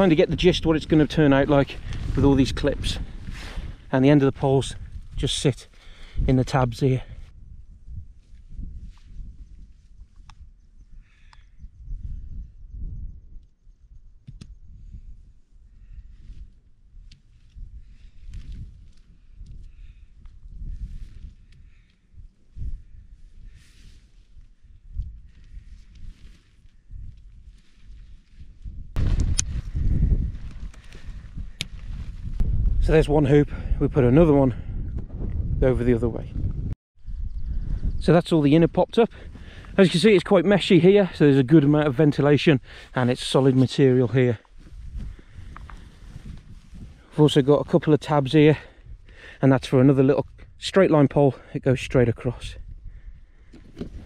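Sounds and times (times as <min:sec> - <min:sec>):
wind rumble on microphone: 0:00.0 - 0:54.0
faint clicks of tent poles: 0:17.0 - 0:20.4.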